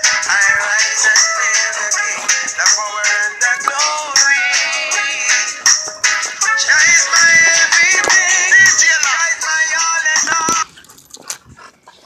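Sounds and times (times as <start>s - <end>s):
background music: 0.0s - 10.6s.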